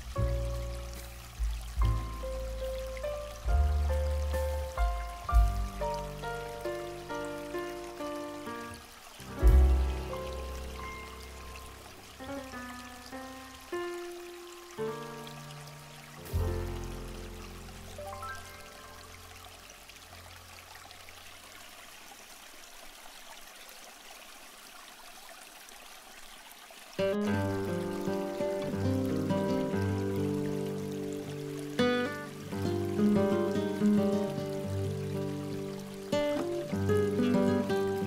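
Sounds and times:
music with held layered notes: 0.0s - 14.0s, 14.6s - 19.0s
trickling water: 0.0s - 38.0s.

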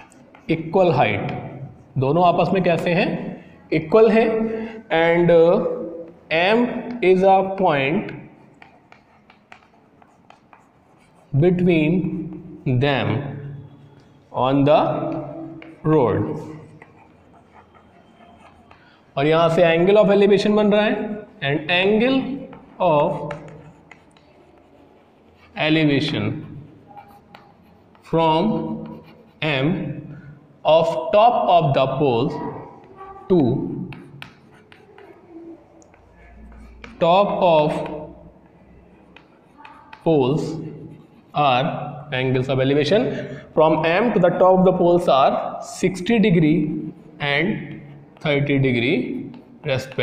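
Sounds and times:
chalk tapping and scraping: 0.0s - 50.0s.

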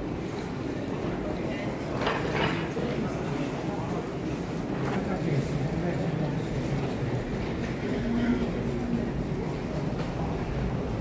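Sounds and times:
low rumble of airport concourse: 0.0s - 11.0s
faint voices: 0.3s - 11.0s.

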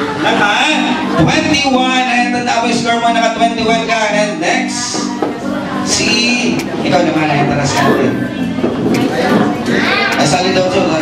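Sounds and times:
music playing: 0.0s - 11.0s
person speaking through a microphone: 5.8s - 8.3s.

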